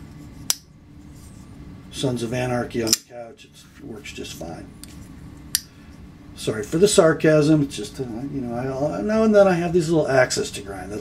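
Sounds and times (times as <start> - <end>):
folding knife blade snapping shut: 2.9 - 3.1.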